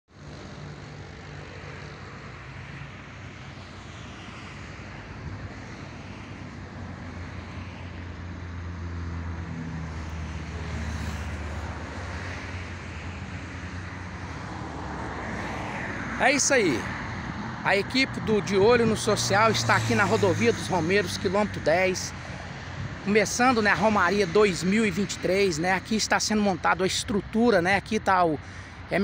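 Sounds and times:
highway traffic: 0.1 - 29.0.

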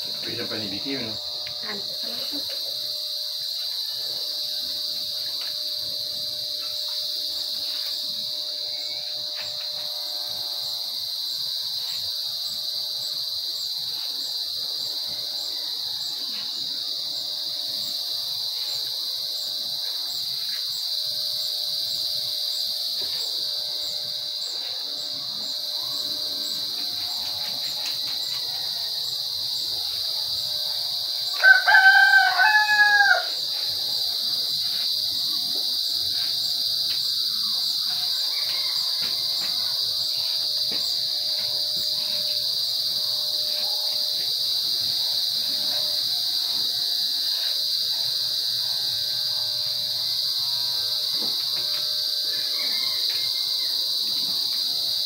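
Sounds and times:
electric hair clippers humming: 0.0 - 20.6, 21.4 - 31.5, 33.2 - 54.8
insects chirring: 0.0 - 55.0
rooster crowing: 15.2 - 17.0, 23.9 - 29.7, 31.0 - 36.6, 37.2 - 51.0, 51.6 - 55.0.

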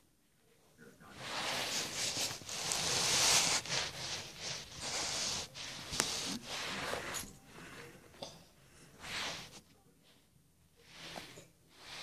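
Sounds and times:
rustling against microphone: 1.1 - 7.8.

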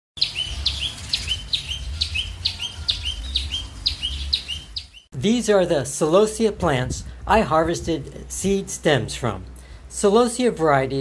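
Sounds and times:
bird calling: 0.2 - 5.1.

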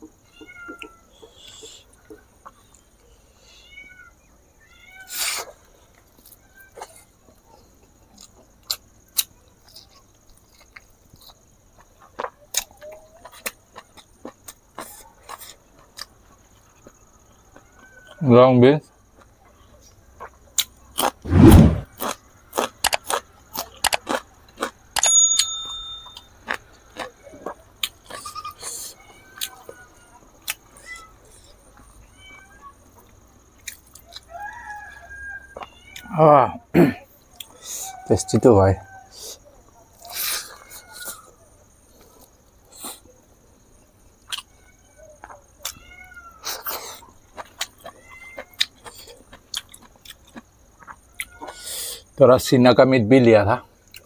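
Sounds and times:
wet chewing and lip-smacking: 8.2 - 17.0, 22.0 - 24.8, 46.5 - 51.8
bean pod crunching when chewed: 20.2 - 24.8, 46.5 - 51.8
bell-like metallic ring: 25.0 - 26.3.

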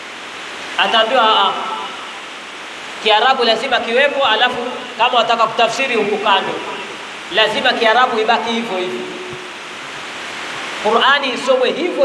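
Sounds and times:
steady hiss: 0.0 - 12.0.

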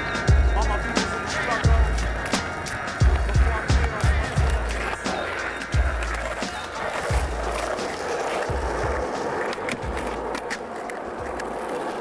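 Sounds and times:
hip-hop beat: 0.0 - 12.0
skateboard rolling on asphalt: 0.0 - 12.0.

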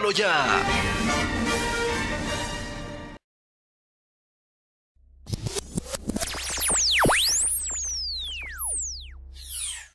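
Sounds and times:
electronic falling and rising sweeps: 5.3 - 9.9.

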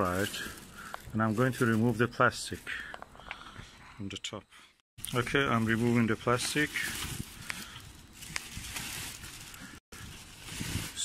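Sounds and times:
plastic wrapping crinkling: 0.0 - 3.0, 5.1 - 11.0.

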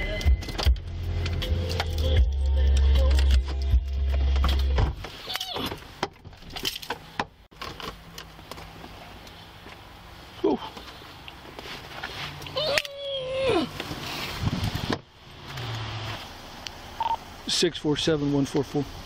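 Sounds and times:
car stereo playing bass-heavy music: 0.0 - 5.2
clicks and rattling: 5.4 - 8.7.

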